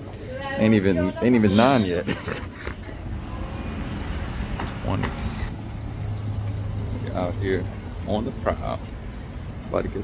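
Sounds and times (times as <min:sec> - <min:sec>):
road noise hiss: 0:00.0 - 0:10.0
vehicle engines humming: 0:00.0 - 0:10.0.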